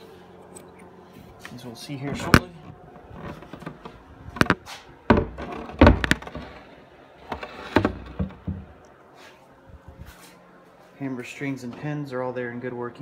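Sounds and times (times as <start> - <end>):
wooden knocks from piano cabinet: 4.4 - 6.5.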